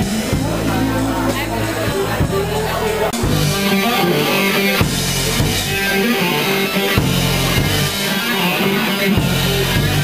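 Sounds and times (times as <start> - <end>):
bass: 0.0 - 10.0
drums: 0.0 - 10.0
guitar: 0.0 - 10.0.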